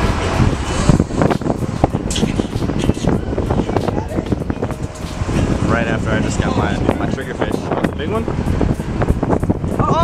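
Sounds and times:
boat engine running: 0:00.0 - 0:10.0
wind buffeting microphone: 0:00.0 - 0:10.0.

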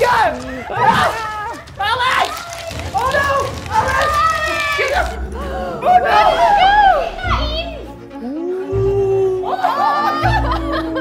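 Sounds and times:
young people shrieking excitedly: 0:00.0 - 0:07.8, 0:08.7 - 0:11.0
music: 0:00.0 - 0:11.0.

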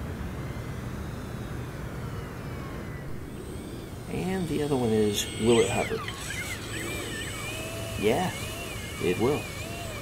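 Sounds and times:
rc airplane motor whine: 0:00.0 - 0:10.0.

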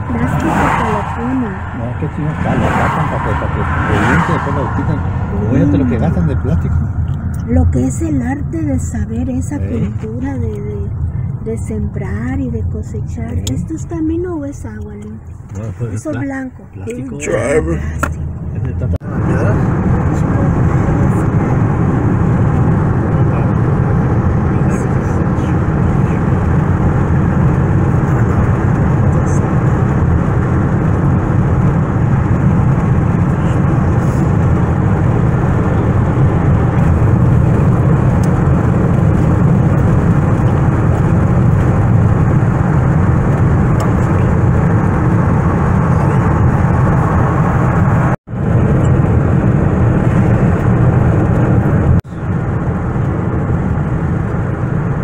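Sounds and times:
car cabin road and engine noise: 0:00.0 - 0:55.0.

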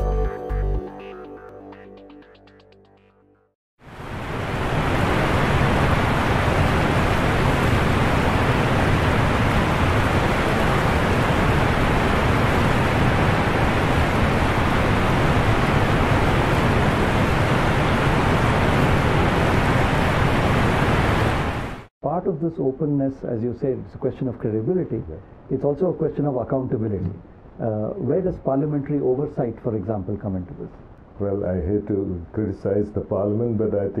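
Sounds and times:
loud steady rushing noise: 0:03.9 - 0:21.9.

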